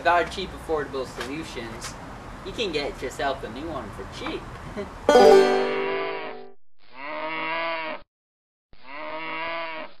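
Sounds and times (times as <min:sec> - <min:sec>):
plucked chord: 0:05.1 - 0:06.5
cow mooing: 0:08.9 - 0:09.9.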